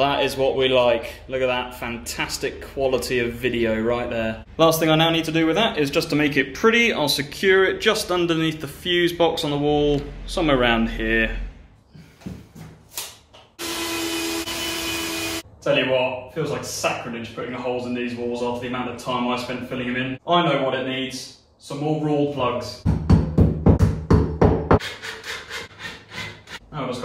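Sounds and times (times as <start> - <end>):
cordless drill drilling into brick: 13.6 - 15.4.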